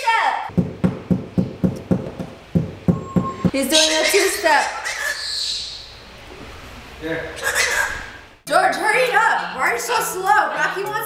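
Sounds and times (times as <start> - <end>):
even knocks: 0.5 - 3.6.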